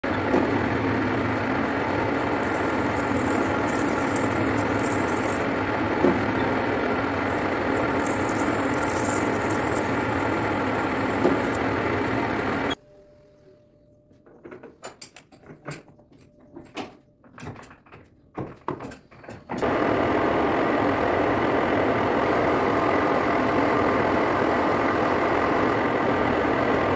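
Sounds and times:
metal lathe cutting: 0.1s - 12.8s.

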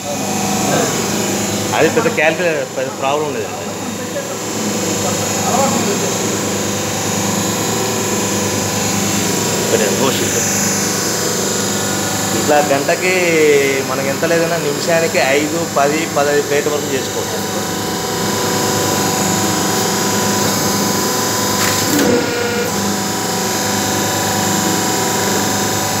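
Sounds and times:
hydraulic pump motor humming: 0.0s - 26.0s.

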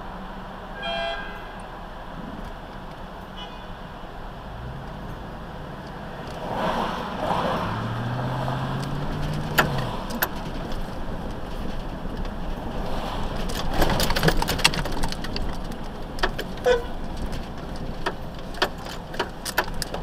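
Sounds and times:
vehicle road and engine noise: 0.0s - 20.0s
clicks and rattles: 8.7s - 20.0s.

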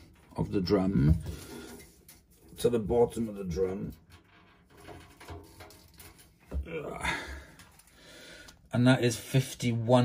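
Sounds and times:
person sighing: 6.7s - 7.7s.

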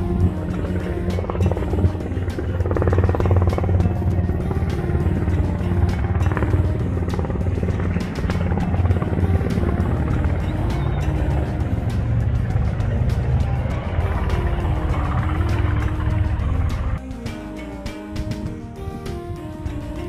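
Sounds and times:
background music: 0.0s - 20.0s
helicopter rotor beating: 0.0s - 20.0s.

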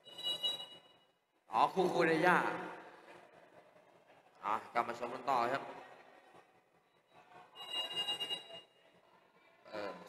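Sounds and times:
whistle blown: 0.0s - 0.9s, 7.6s - 8.6s
faint hall noise: 0.0s - 10.0s.

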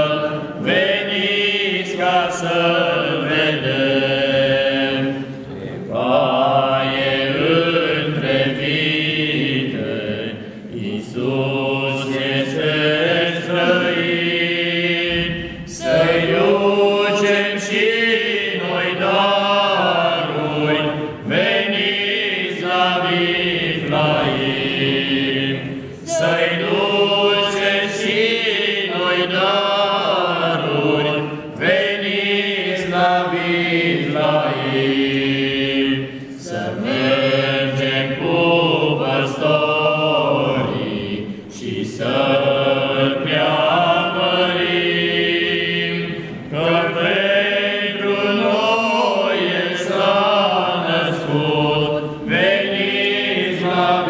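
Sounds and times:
men singing unaccompanied: 0.0s - 54.0s.

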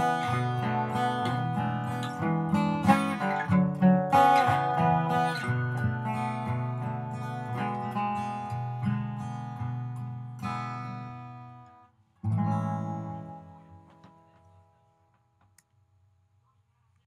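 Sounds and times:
acoustic guitar strumming chords: 0.0s - 14.6s.

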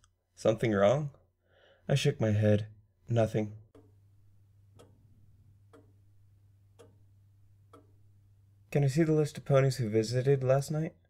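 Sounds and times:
low steady hum: 0.4s - 10.9s
faint clock ticking: 3.6s - 8.9s.

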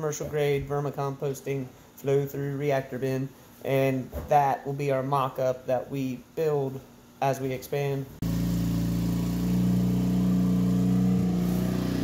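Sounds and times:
loader engine running: 8.2s - 12.0s.

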